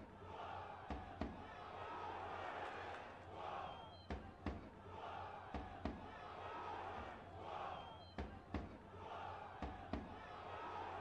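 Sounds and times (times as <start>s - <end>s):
stadium crowd chanting: 0.0s - 11.0s.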